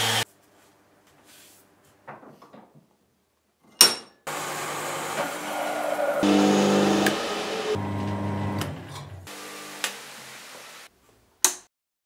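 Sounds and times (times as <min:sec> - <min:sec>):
electric motor humming down: 0:00.0 - 0:00.2, 0:04.3 - 0:10.3.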